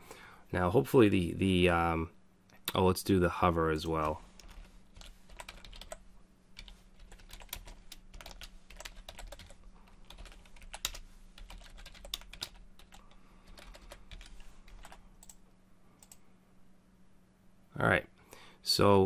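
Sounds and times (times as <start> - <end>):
computer keyboard typing: 4.0 - 6.0, 6.6 - 15.4, 16.0 - 16.2.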